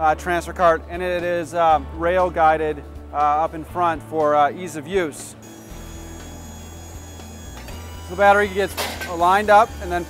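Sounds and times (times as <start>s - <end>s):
electric drive humming: 5.4s - 10.0s.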